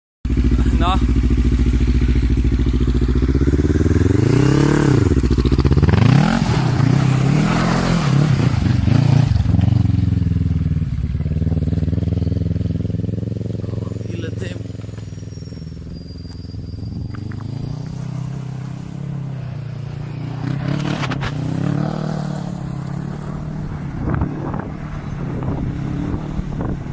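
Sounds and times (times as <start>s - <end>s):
quad engine idling and revving: 0.3s - 26.9s.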